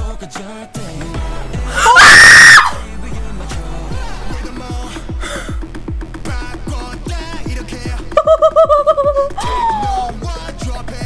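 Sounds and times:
woman screaming: 1.8s - 2.8s, 8.2s - 10.1s
music with deep bass beat: 2.6s - 11.0s.

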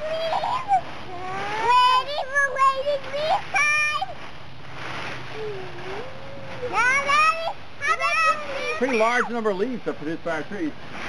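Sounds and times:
dry leaves rustling: 0.0s - 11.0s.

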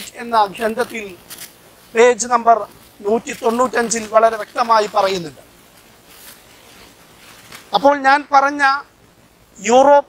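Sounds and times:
man speaking: 0.0s - 1.3s, 1.9s - 5.5s, 7.7s - 8.9s, 9.6s - 10.0s
rustle on clip-on microphone: 0.0s - 9.9s.

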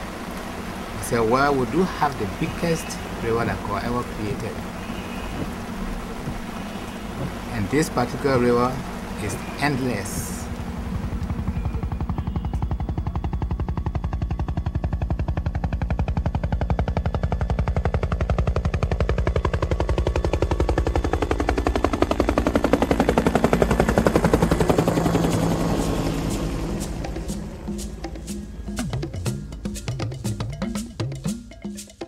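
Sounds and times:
helicopter rotor chopping: 0.0s - 31.4s.

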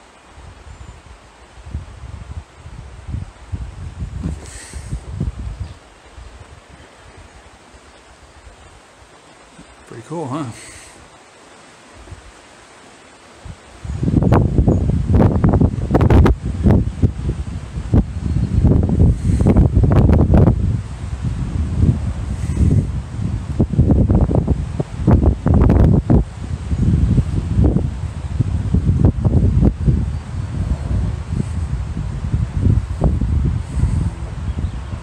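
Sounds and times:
wind buffeting microphone: 0.0s - 9.7s, 13.4s - 35.0s.

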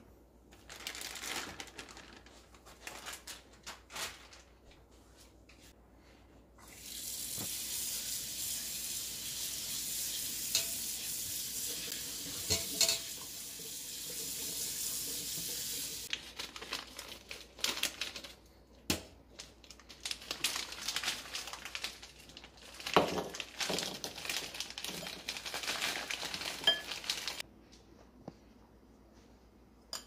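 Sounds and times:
tap water running into colander: 6.6s - 16.1s.

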